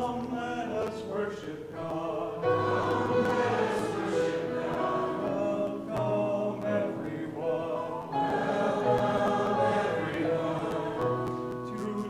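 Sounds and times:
congregation singing a hymn: 0:00.0 - 0:12.0.

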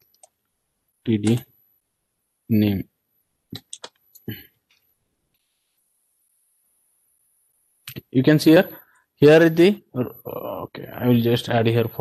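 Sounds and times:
sharp clicks: 0:01.2 - 0:01.4, 0:03.6 - 0:04.3.

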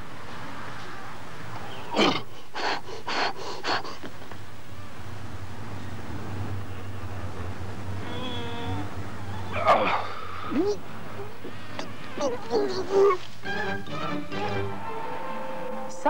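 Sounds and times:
steady low hum: 0:00.0 - 0:13.9
man grunting and groaning: 0:09.6 - 0:11.3, 0:12.2 - 0:13.2.

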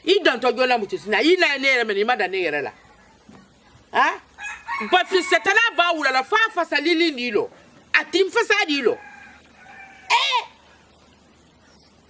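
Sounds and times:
chicken squawk: 0:09.0 - 0:10.8.

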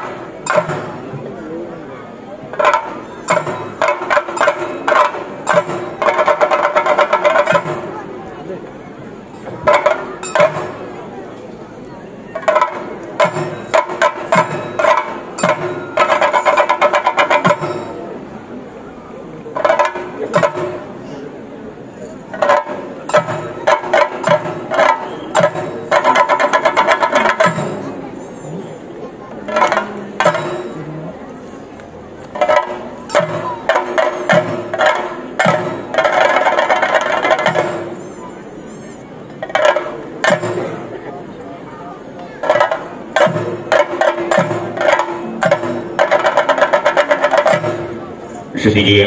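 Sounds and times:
drums: 0:00.0 - 0:49.0
hand cymbals ringing: 0:29.7 - 0:31.1.

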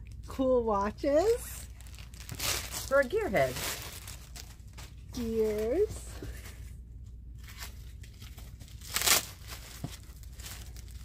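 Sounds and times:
steady low hum: 0:00.0 - 0:11.0
plastic wrapping rustling: 0:01.0 - 0:06.7, 0:07.4 - 0:11.0
loud plastic crinkle: 0:01.2 - 0:06.4, 0:07.4 - 0:11.0.

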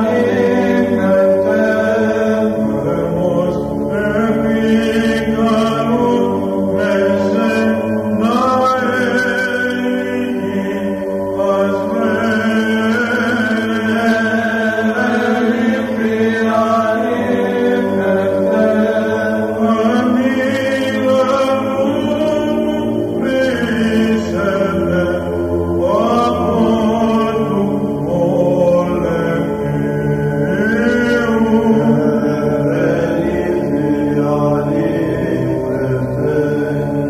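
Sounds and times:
low held drone: 0:00.0 - 0:37.0
voices singing ornamented hymn: 0:00.0 - 0:37.0.

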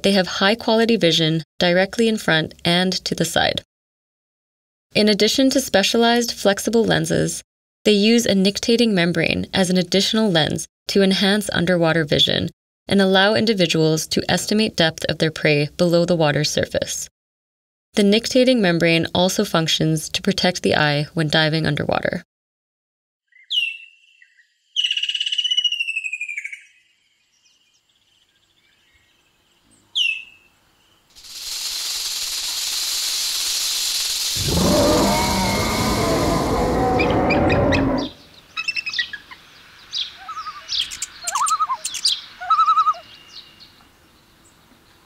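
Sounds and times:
bird calls: 0:40.0 - 0:43.5.

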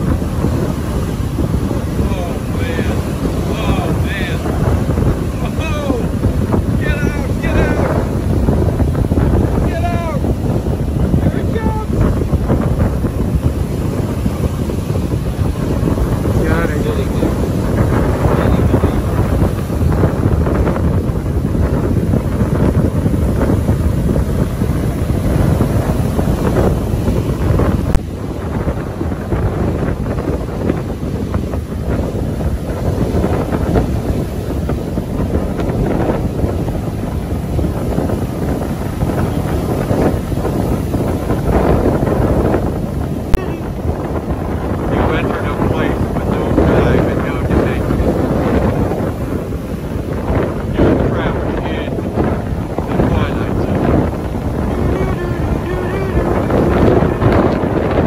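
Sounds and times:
gusty wind buffeting microphone: 0:00.0 - 0:58.0
surf breaking: 0:00.0 - 0:58.0.

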